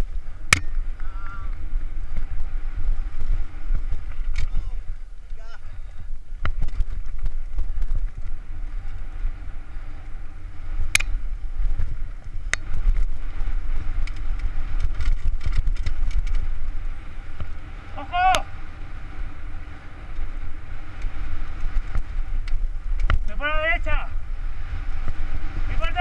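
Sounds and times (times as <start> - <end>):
bike rattling: 0.0 - 26.0
tyres and wind rumble: 0.0 - 26.0
person shouting: 17.9 - 18.5.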